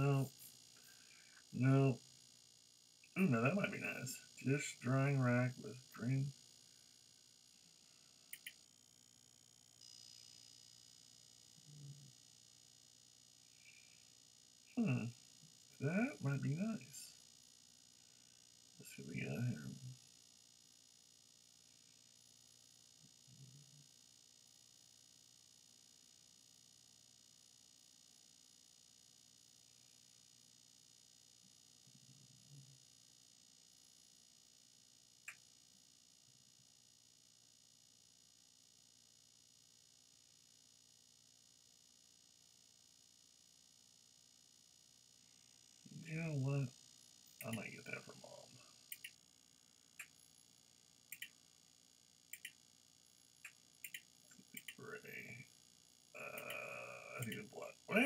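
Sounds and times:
man murmuring: 0.0s - 0.3s, 1.6s - 2.0s, 3.2s - 6.3s, 14.8s - 15.1s, 15.8s - 17.1s, 18.8s - 19.8s, 46.0s - 46.7s, 47.4s - 48.4s, 54.7s - 55.4s, 56.2s - 58.0s
faint electrical hum: 0.0s - 58.0s
computer mouse clicks: 8.3s - 8.6s, 48.9s - 49.2s, 51.1s - 51.4s, 52.3s - 52.6s, 53.4s - 54.8s.

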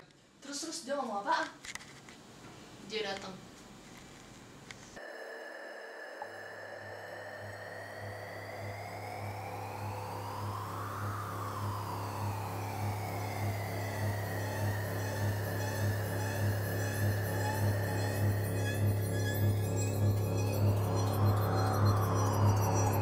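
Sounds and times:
high sweeping electronic tones: 5.0s - 23.0s
low pulsing drone: 5.0s - 23.0s.

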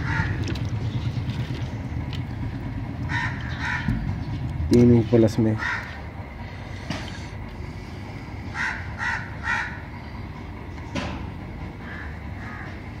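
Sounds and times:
bird calling: 0.0s - 1.8s, 3.0s - 4.6s, 5.5s - 10.3s
steady low hum: 0.0s - 13.0s.

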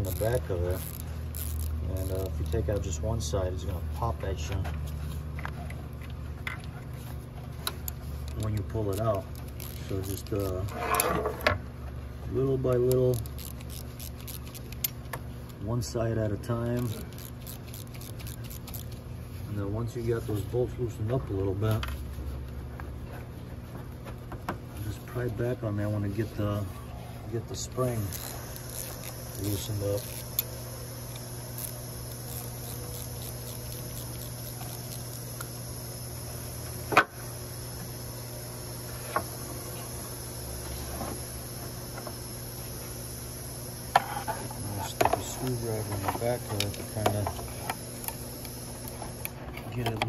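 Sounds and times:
ratchet clicking: 0.0s - 2.9s, 7.6s - 11.1s, 12.5s - 15.6s, 16.4s - 19.0s, 27.7s - 35.6s
steady low hum: 0.0s - 50.0s.

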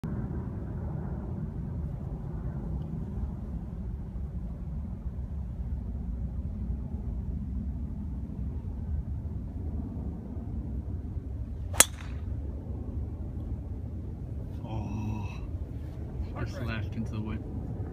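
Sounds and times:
low background rumble: 0.0s - 17.9s
golf club striking ball: 11.7s - 12.4s.

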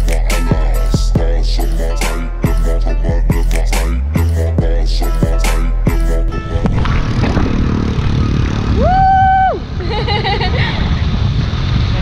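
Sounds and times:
background music: 0.0s - 8.4s
motorcycle engine: 0.0s - 12.0s
wind noise on microphone: 5.8s - 12.0s.

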